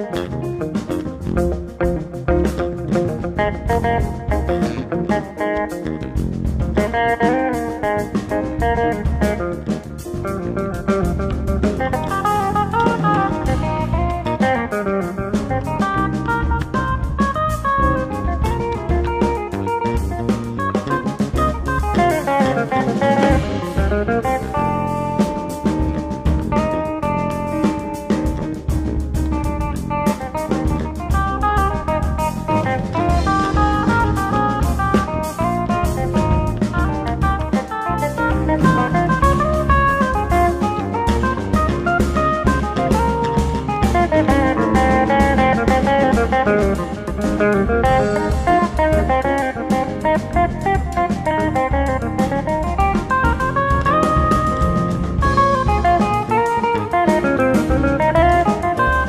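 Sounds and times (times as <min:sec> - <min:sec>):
electric guitar fast runs: 0:00.0 - 0:59.0
jazz quartet playing: 0:00.0 - 0:59.0.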